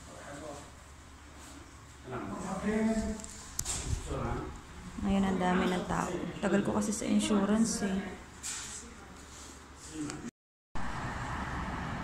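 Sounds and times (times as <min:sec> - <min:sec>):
road traffic rushing hum: 0:10.8 - 0:12.0.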